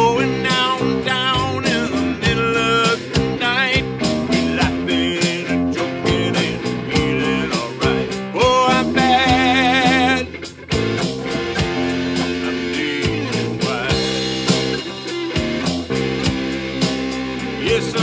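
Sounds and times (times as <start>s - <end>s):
bent lead guitar note: 0.0s - 18.0s
blues-rock band playing: 0.0s - 18.0s.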